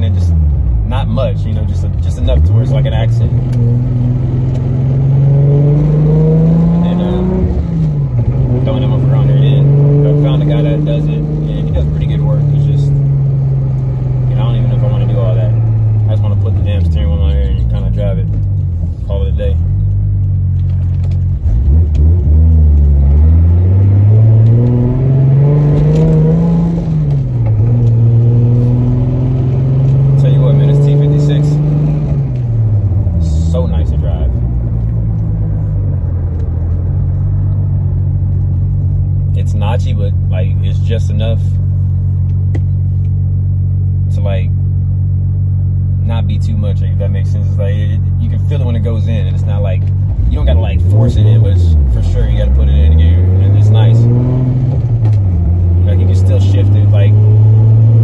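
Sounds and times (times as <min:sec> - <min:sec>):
car engine from inside cabin: 0:00.0 - 0:58.0.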